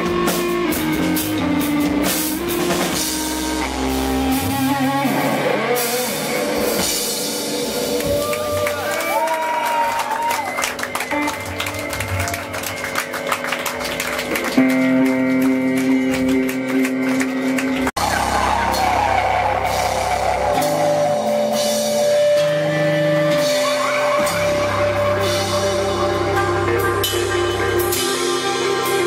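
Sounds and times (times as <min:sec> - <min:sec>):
bass guitar: 0:00.0 - 0:29.0
drum kit: 0:00.0 - 0:29.0
electric guitar: 0:00.0 - 0:29.0.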